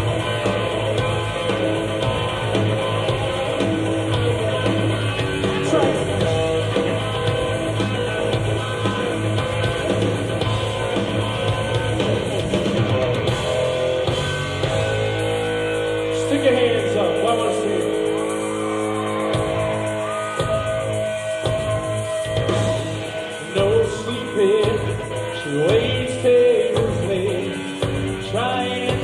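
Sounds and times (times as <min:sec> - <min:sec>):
live hard rock band: 0:00.0 - 0:29.0
pitch-bending guitar notes: 0:00.0 - 0:29.0.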